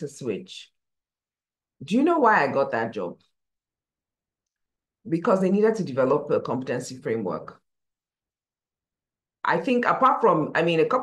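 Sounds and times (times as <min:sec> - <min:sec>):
person speaking: 0:09.4 - 0:11.0.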